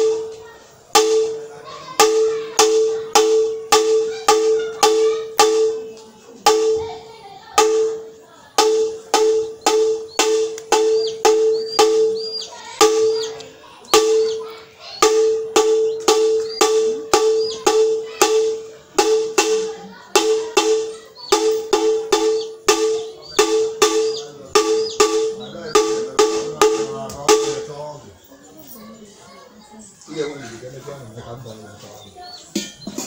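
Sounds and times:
metal gong struck rapidly: 15.0s - 27.7s.

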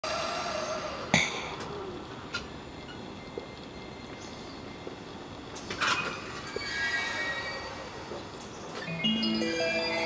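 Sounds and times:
train wheels squealing: 5.8s - 9.0s.

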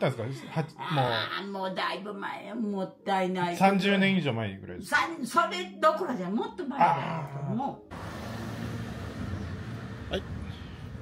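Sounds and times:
low engine hum: 7.9s - 11.0s
street ambience: 8.0s - 11.0s.

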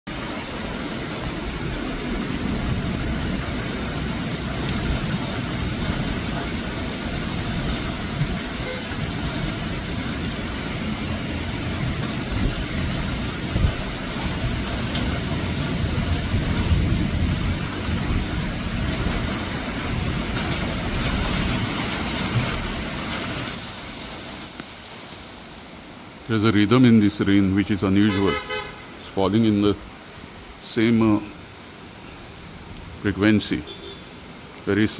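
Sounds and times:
rain on leaves and roofs: 0.1s - 34.9s.

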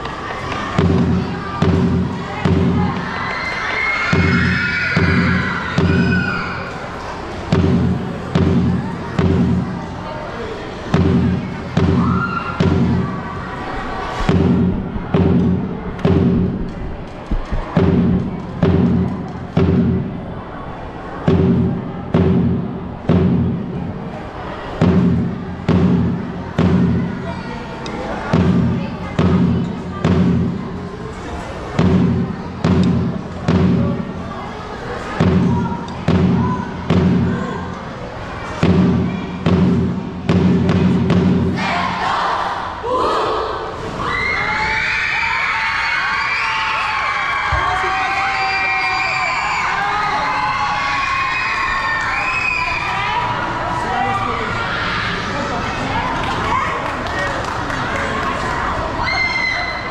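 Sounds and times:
children cheering and shouting: 0.0s - 10.1s, 10.9s - 16.1s, 40.7s - 59.9s
heavy drum beats: 0.6s - 3.3s, 4.1s - 6.6s, 7.4s - 10.0s, 10.7s - 20.5s, 21.2s - 24.1s, 24.7s - 27.4s, 28.2s - 31.0s, 31.7s - 34.4s, 35.0s - 38.0s, 38.6s - 42.2s.

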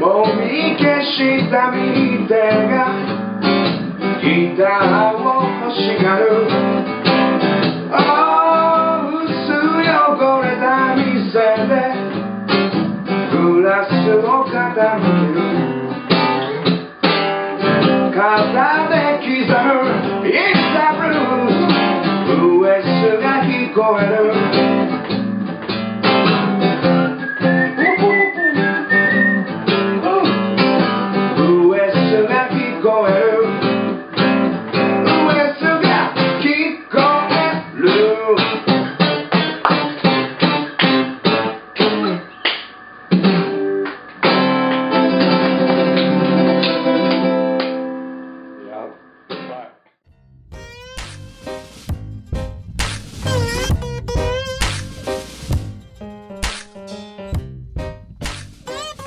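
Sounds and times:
acoustic guitar playing: 0.0s - 27.8s, 28.7s - 48.8s, 50.1s - 59.0s.

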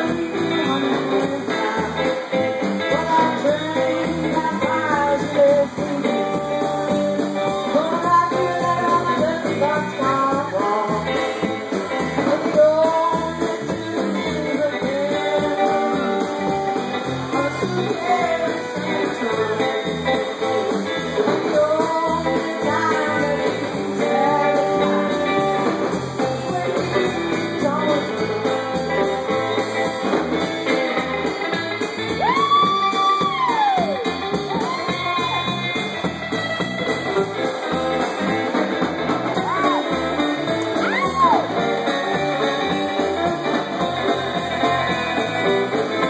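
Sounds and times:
woman singing: 0.0s - 29.6s, 32.2s - 35.9s
drums: 0.0s - 46.0s
electric bass: 0.0s - 46.0s
electric guitar: 0.0s - 46.0s.

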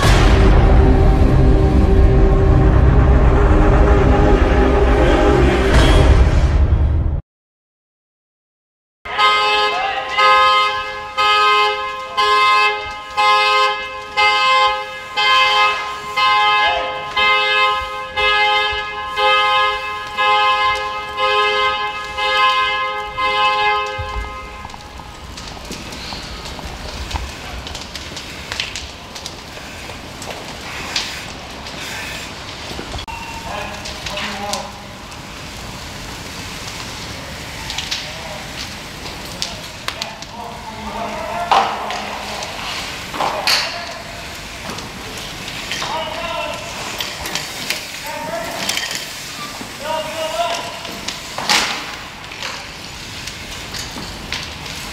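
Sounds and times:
vehicle fire crackling and popping: 0.0s - 3.8s, 9.1s - 54.9s
low rumble: 0.0s - 7.2s
car horn honking: 9.1s - 24.8s.

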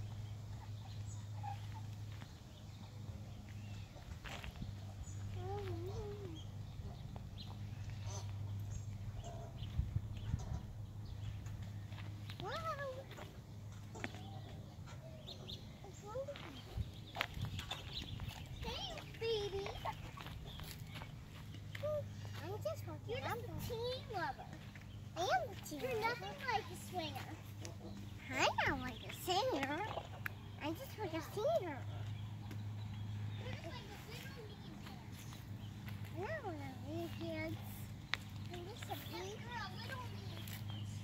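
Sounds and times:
toddler footsteps on concrete: 0.8s - 10.4s, 11.2s - 41.0s
toddler sing-song voice: 5.3s - 6.5s.

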